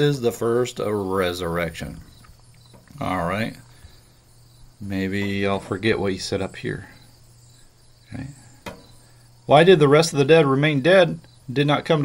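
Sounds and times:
faint background hiss: 0.0s - 12.0s
sharp click: 8.6s - 8.9s.

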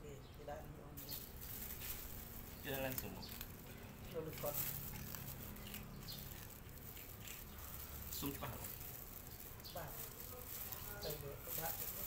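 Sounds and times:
cat chewing crunchy snack: 1.7s - 9.6s.

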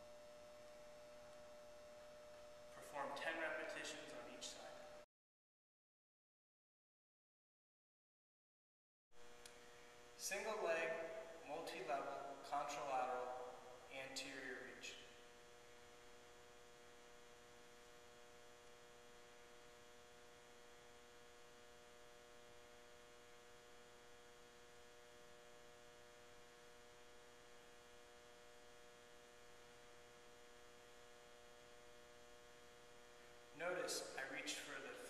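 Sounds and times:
faint electrical hum: 0.0s - 5.1s, 9.2s - 35.0s.

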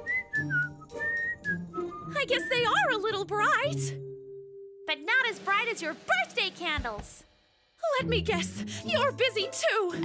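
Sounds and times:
cartoon character whistling: 0.0s - 2.6s.

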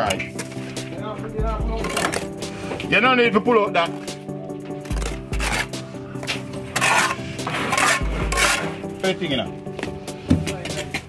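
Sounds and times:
background music: 0.0s - 11.0s
trowel scraping mortar: 1.8s - 2.8s, 4.8s - 8.9s.

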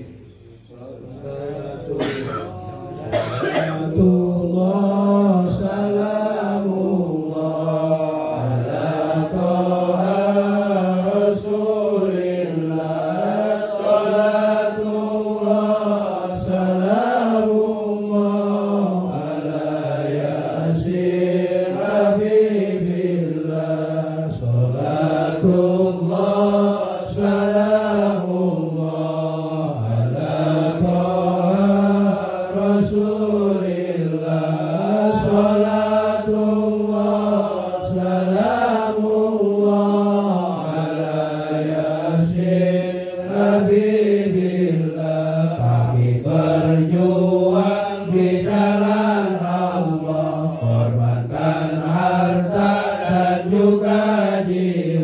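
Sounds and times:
man chanting: 0.0s - 21.2s, 24.0s - 26.3s, 27.0s - 40.8s, 43.3s - 54.7s.

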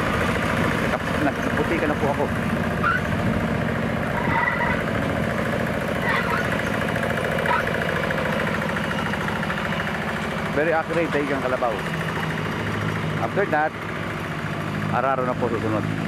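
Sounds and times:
hand tractor engine under load: 0.0s - 16.0s.

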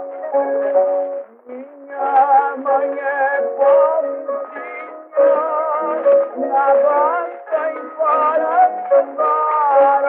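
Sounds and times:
old guitar recording melody: 0.0s - 10.0s.

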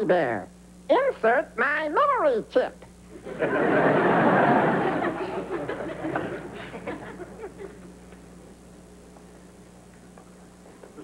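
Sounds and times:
audience laughing: 3.2s - 7.9s.

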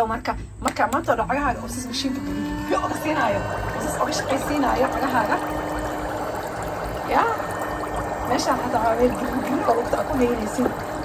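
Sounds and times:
motor hum: 0.9s - 11.0s
water bubbling in basin: 1.5s - 11.0s.

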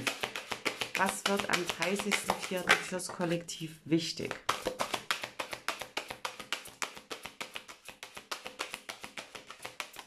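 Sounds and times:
cards being shuffled: 0.0s - 3.0s, 4.3s - 10.0s.

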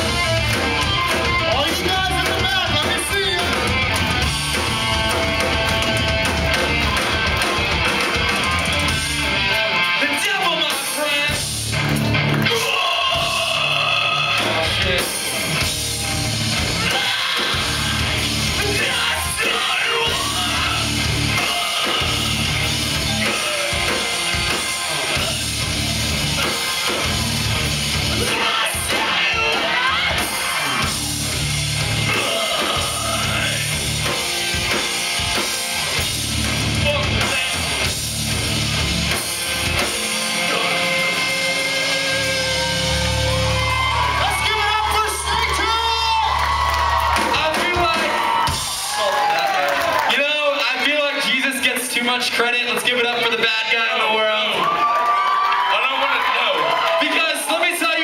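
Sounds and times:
live rock band: 0.0s - 58.0s
sung and shouted vocals: 12.4s - 15.1s, 16.8s - 24.0s, 28.1s - 31.0s, 32.0s - 33.8s.

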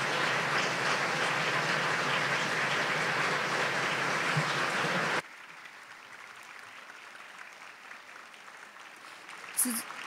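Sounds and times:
audience applause: 0.0s - 10.0s.

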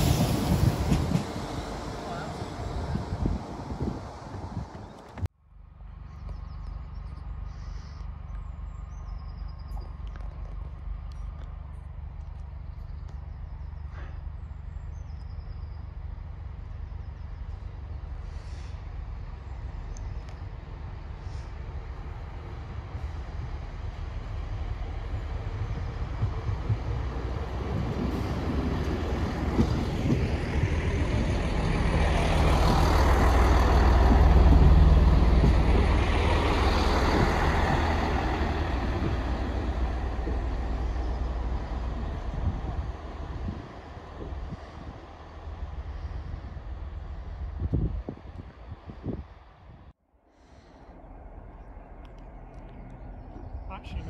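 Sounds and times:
train wheel noise: 0.0s - 5.3s, 17.4s - 49.4s
diesel train engine hum: 0.0s - 54.0s.

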